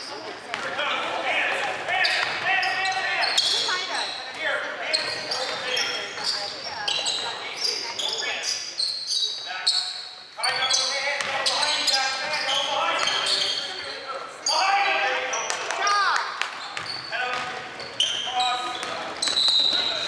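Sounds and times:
sneakers squeaking: 0.0s - 20.0s.

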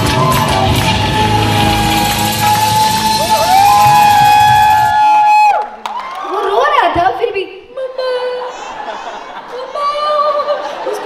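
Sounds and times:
folk dance music: 0.0s - 5.2s
people cheering: 0.0s - 6.8s.

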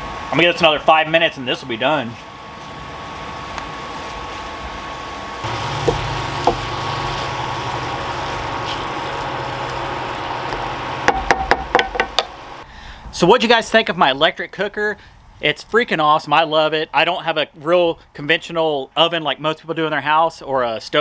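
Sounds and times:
vegetables sizzling in a skillet: 5.2s - 11.2s.

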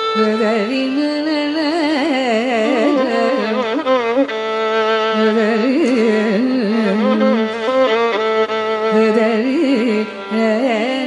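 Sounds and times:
violin playing slow phrase: 0.0s - 1.3s, 2.6s - 11.0s
tanpura drone: 0.0s - 11.0s.

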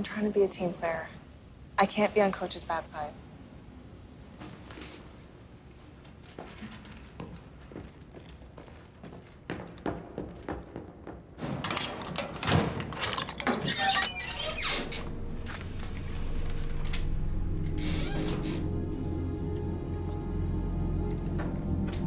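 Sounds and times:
metal locker door clanking open: 11.4s - 14.1s
combination padlock being handled: 11.7s - 14.0s
tense background music: 14.6s - 22.0s
footsteps: 15.0s - 18.7s, 21.0s - 22.0s.

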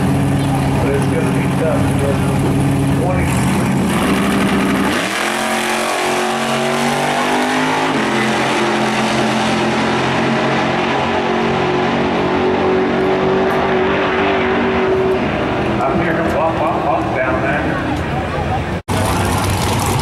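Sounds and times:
drag racing cars accelerating: 0.0s - 20.0s.

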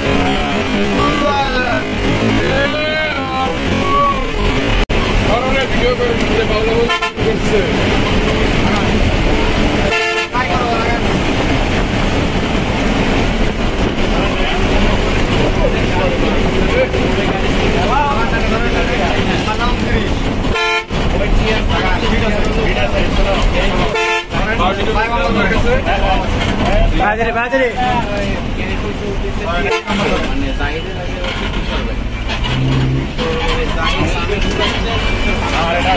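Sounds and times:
vehicle horns honking: 0.0s - 4.7s, 6.7s - 7.5s, 9.2s - 10.8s, 20.5s - 21.1s, 23.8s - 24.6s, 29.6s - 30.9s, 32.2s - 35.6s
bus engine and road noise: 0.0s - 35.9s.

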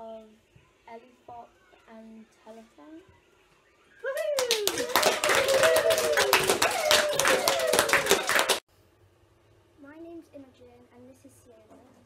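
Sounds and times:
child whooping: 4.0s - 8.6s
group clapping hands: 4.2s - 8.6s.

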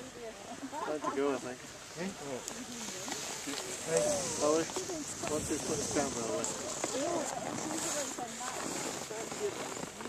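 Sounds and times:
indistinct talking: 0.0s - 10.0s
steady hiss: 0.2s - 8.4s.

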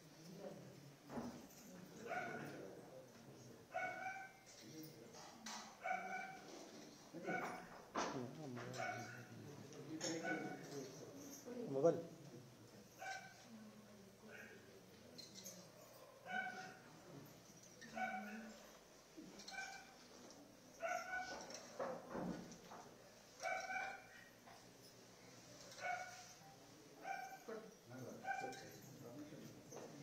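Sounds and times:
murmur of a gathering: 0.0s - 30.0s.

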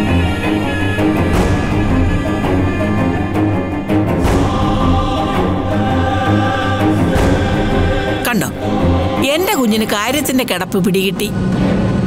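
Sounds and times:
dramatic choral music: 0.0s - 12.0s.

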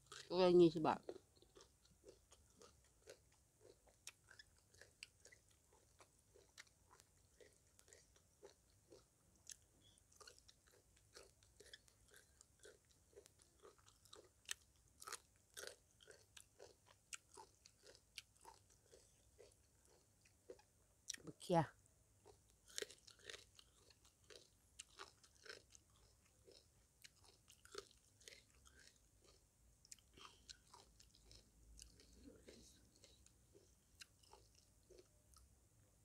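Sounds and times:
chewing and crunching food: 0.0s - 35.5s.

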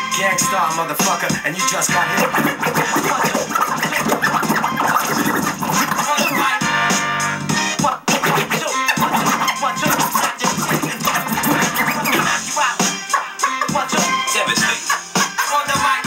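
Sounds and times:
hip-hop beat: 0.0s - 16.0s
turntable scratching: 0.1s - 16.0s.

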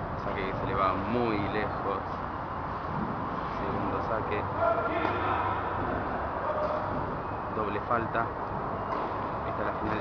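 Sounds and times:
steady low hum and hiss: 0.0s - 10.0s.

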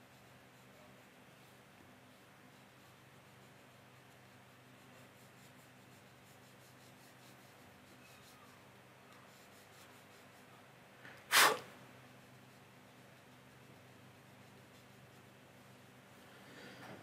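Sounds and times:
paintbrush scratching on paper: 0.0s - 10.7s, 11.3s - 16.2s
sharp breath: 11.3s - 11.7s.

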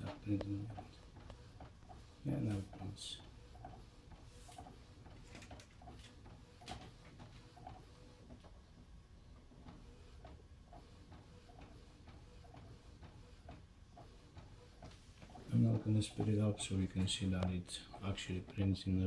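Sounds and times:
low mechanical hum: 0.0s - 19.0s
printer ticking: 0.0s - 19.0s.

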